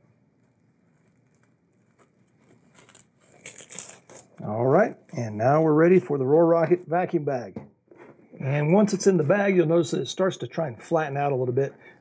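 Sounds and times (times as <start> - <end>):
plastic wrap crinkling: 0.4 - 5.3.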